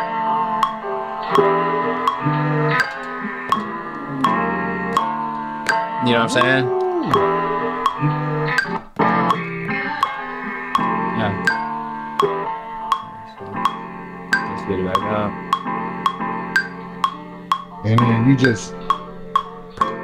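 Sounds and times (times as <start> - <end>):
chopped guitar music sample: 0.0 - 20.0.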